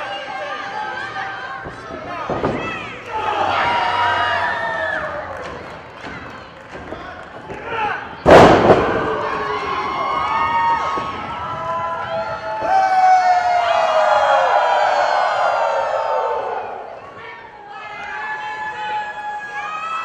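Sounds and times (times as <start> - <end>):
crowd cheering and shouting: 0.0 - 6.3, 7.5 - 20.0.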